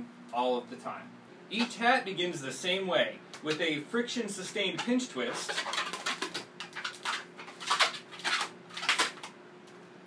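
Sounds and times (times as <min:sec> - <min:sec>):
balloon squeaking: 0:05.2 - 0:09.0.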